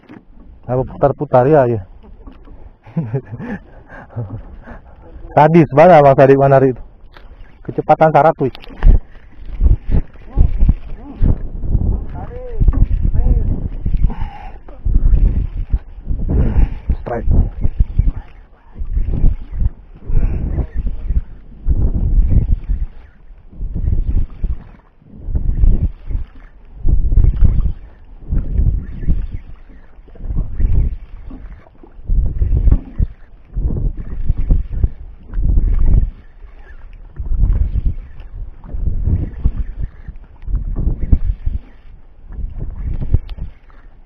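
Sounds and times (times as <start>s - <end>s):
wind rumbling on microphone: 0.0s - 44.0s.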